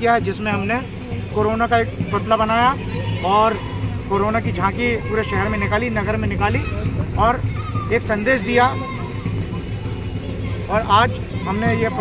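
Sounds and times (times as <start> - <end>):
rumbling background noise: 0.0 - 12.0.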